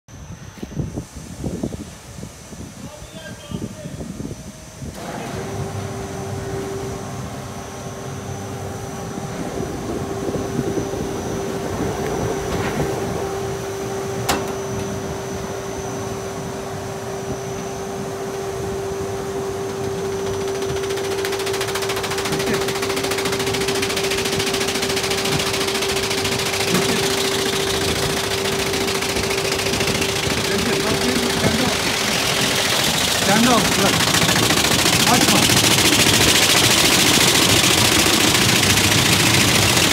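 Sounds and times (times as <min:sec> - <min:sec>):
loud rattling hiss: 0:00.3 - 0:39.9
rug beating machine humming: 0:00.7 - 0:39.9.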